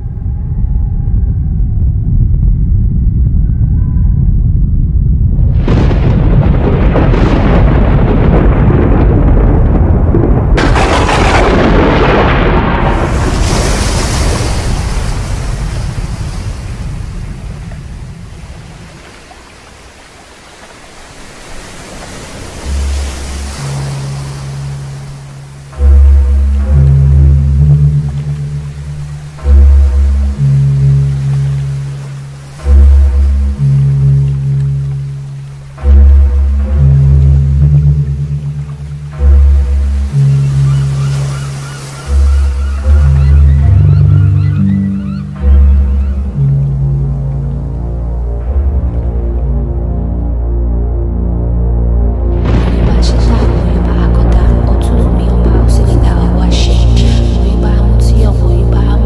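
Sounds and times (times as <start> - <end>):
deep held bass music: 0.0 - 12.8, 22.6 - 59.0
thunder rumbling: 0.0 - 59.0
loud bass hits: 4.2 - 15.0.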